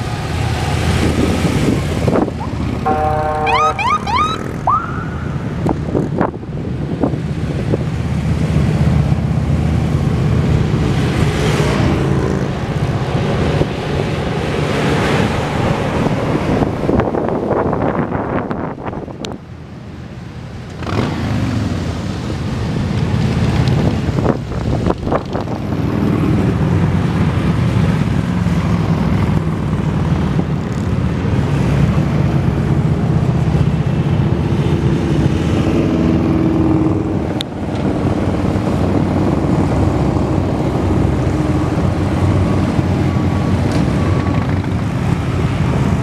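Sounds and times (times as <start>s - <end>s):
truck passing: 0.0s - 18.8s, 20.0s - 46.0s
police motorcycles passing: 0.0s - 46.0s
siren whoops: 2.9s - 5.3s.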